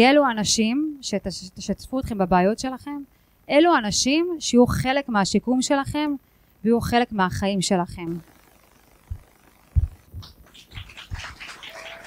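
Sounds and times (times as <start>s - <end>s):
low thumps: 9.1s - 10.3s
audience applause: 10.4s - 12.0s.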